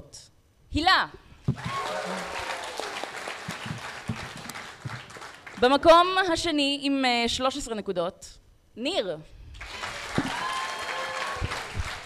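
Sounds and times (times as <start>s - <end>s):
audience applauding: 1.6s - 5.6s, 9.6s - 12.0s.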